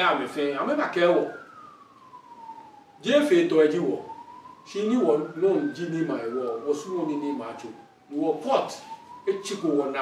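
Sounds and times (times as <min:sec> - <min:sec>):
siren wailing: 0:00.0 - 0:10.0.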